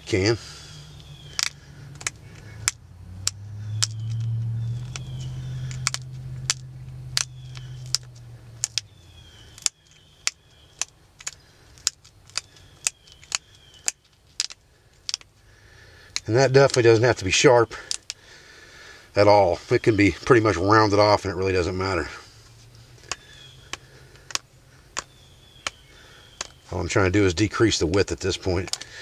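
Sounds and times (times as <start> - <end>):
low hum: 0.0 - 26.8
stone flakes clicking off: 1.0 - 8.9, 9.5 - 15.3, 17.8 - 18.2.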